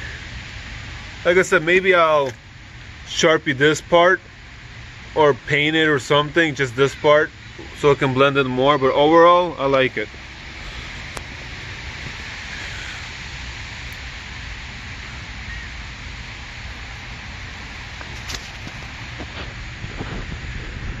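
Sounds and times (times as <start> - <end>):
outdoor background hiss: 0.0 - 21.0.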